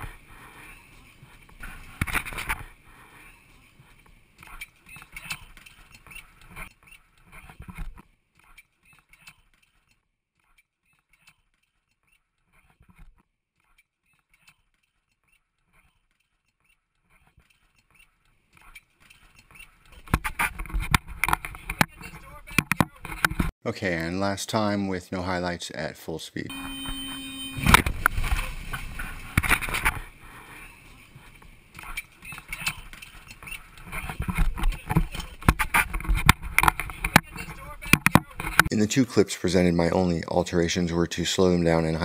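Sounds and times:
knocks and clatters: 19.0s - 23.5s, 31.4s - 38.7s.

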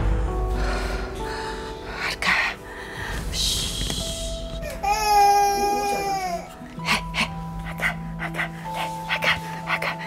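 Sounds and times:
toddler crying: 4.6s - 6.8s.

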